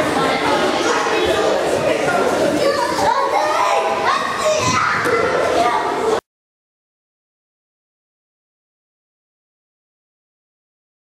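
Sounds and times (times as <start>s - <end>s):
children talking and calling out: 0.0s - 6.2s.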